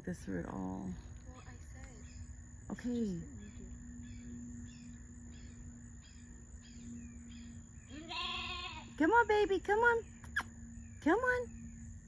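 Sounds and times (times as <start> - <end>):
faint insect chirping: 0.0 - 12.0
lamb bleating: 7.9 - 8.9.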